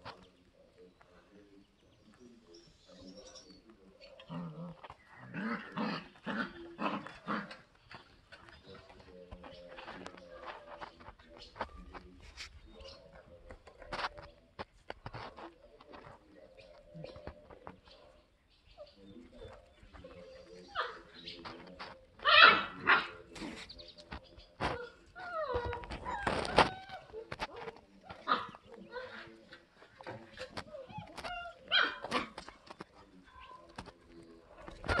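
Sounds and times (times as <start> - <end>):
puppies barking: 20.6 - 21.4, 22.1 - 23.4, 24.6 - 29.4, 30.9 - 32.5.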